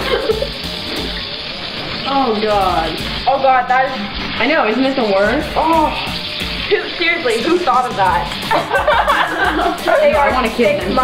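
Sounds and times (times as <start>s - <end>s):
music playing: 0.0s - 11.0s
tap water running into sink: 0.0s - 11.0s.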